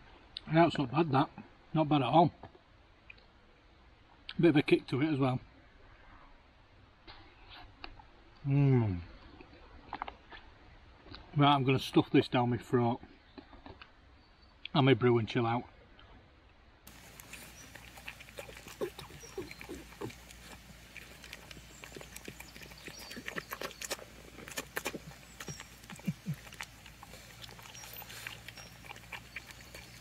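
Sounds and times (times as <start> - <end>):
dog crunching dry kibble: 16.9 - 30.0.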